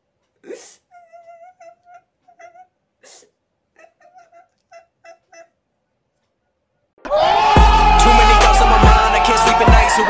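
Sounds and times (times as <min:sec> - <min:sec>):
person whimpering sobs: 0:00.4 - 0:05.6.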